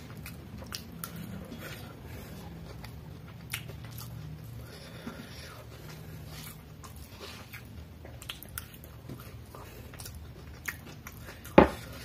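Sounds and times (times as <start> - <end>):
chewing noodles: 0.0 - 12.0.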